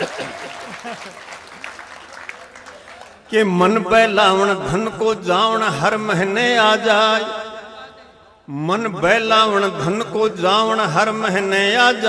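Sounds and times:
audience laughing: 0.0s - 1.9s
audience applauding: 0.0s - 3.4s.

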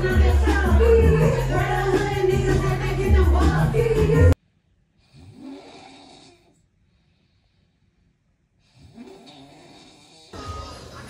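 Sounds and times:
loud dance music: 0.0s - 4.4s
man snoring: 5.0s - 6.6s, 8.7s - 10.4s.

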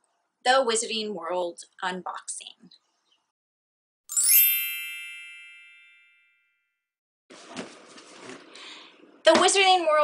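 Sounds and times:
high ringing chime: 4.1s - 6.6s.

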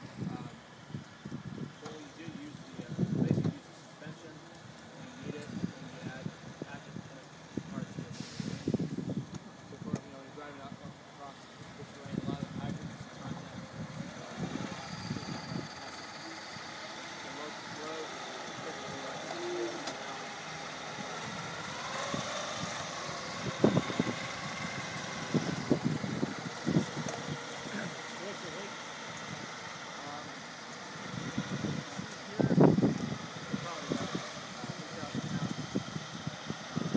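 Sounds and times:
voices: 0.0s - 0.8s, 1.6s - 36.9s
electric rover driving over grass: 0.0s - 36.9s.

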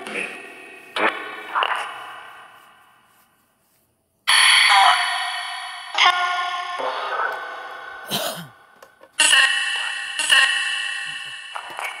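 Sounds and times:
echoing voice-like snippets: 0.0s - 2.2s, 4.3s - 5.3s, 5.9s - 8.5s, 9.1s - 12.0s.

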